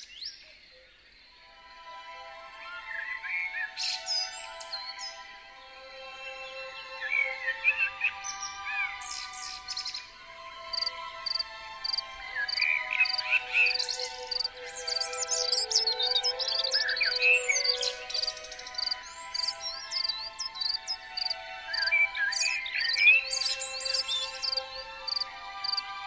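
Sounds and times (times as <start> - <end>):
soft background music: 1.3 - 26.0
birds chirping and singing: 2.6 - 26.0.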